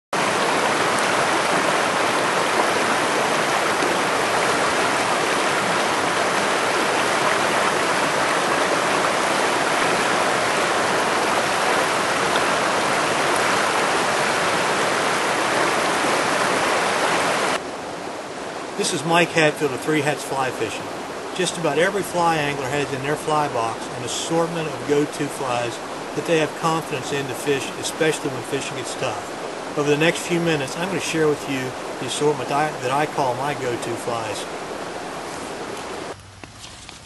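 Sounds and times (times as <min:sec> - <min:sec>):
stream water rushing: 0:00.1 - 0:36.2.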